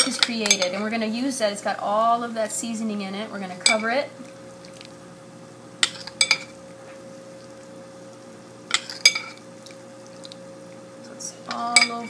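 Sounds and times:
metal spoon clinking on ceramic: 0:11.7 - 0:12.0.

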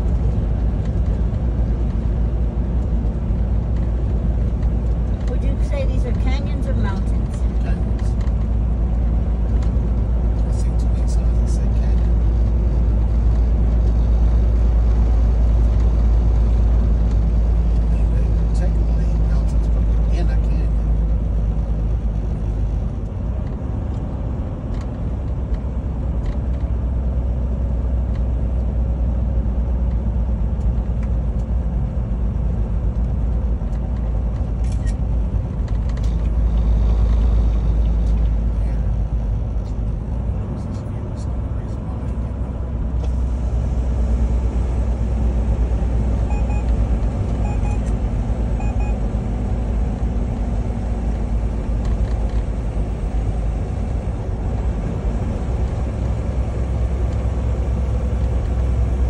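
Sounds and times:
road and wind noise: 0:00.0 - 0:59.0
truck engine drone: 0:00.0 - 0:59.0.

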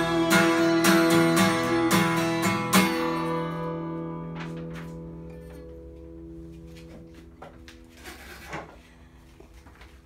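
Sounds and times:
acoustic guitar chord ringing: 0:00.0 - 0:09.2.

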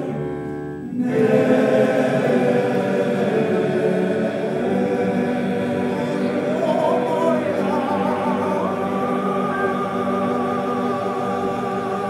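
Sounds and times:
men's choir singing: 0:00.9 - 0:12.0.

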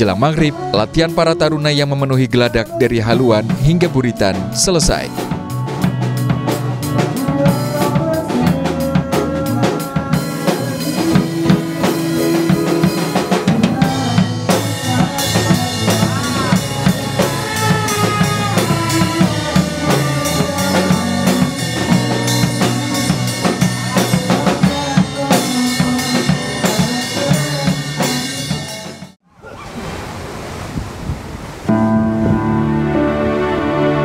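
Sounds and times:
band playing upbeat song: 0:00.0 - 0:29.2
prominent drum beat: 0:02.7 - 0:29.2.

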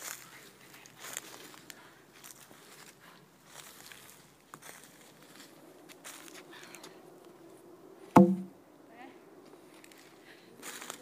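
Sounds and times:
log thudding on dirt: 0:08.2 - 0:08.5.

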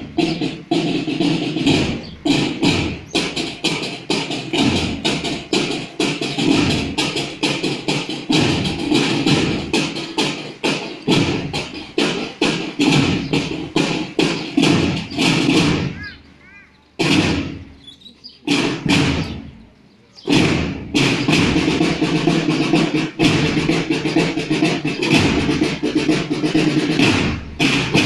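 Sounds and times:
drum band marching rhythm: 0:00.0 - 0:28.0.

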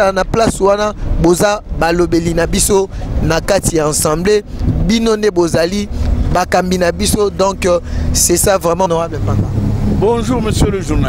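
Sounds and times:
car engine hum and road noise: 0:00.0 - 0:11.0.

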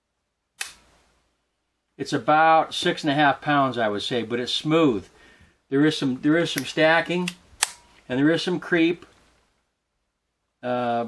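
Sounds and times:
pistol dry-fire click: 0:00.6 - 0:00.9, 0:06.6 - 0:08.0.

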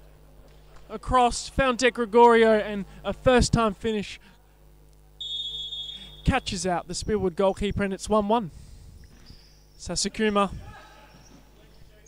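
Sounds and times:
referee's whistle long note: 0:05.2 - 0:06.4.

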